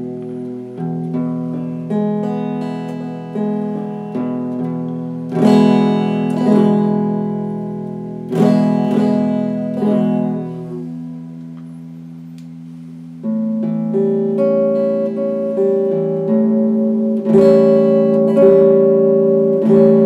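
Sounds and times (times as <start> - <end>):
electric guitar picked notes: 0.0 - 20.0
strummed guitar chords: 0.0 - 20.0.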